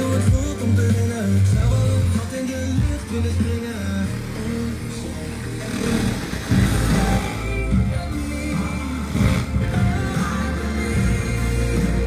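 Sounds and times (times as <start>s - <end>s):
music with strong bass line: 0.0s - 12.0s.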